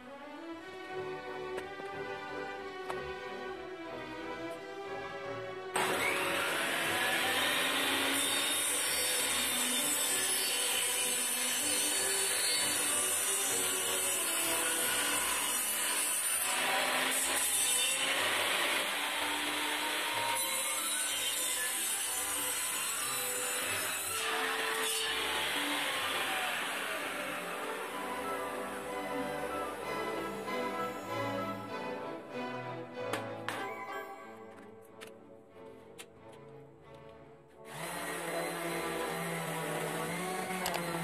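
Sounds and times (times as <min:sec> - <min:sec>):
table saw cutting wood: 0:05.7 - 0:33.8, 0:37.6 - 0:41.0.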